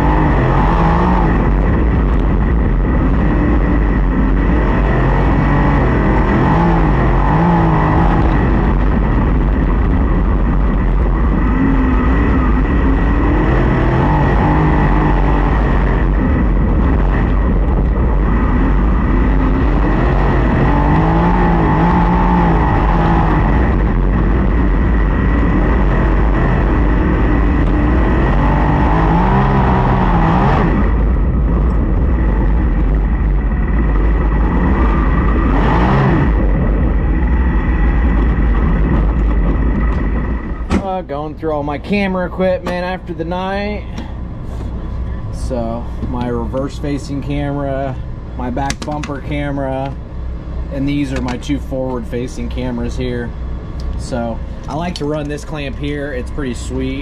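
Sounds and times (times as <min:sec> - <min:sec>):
race car engine revving: 0:00.0 - 0:41.9.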